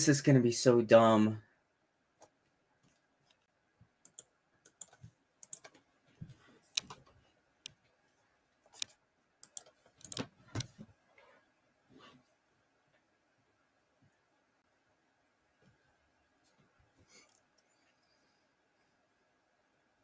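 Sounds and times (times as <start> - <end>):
computer keyboard typing: 4.1 - 5.8, 8.7 - 10.3.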